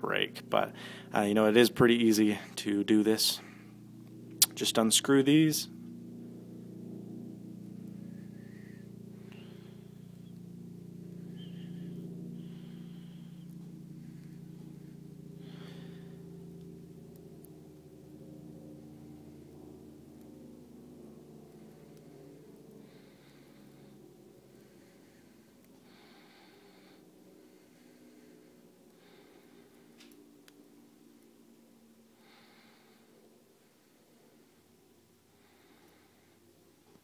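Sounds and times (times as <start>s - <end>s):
low multi-tone hum: 0.0s - 37.0s.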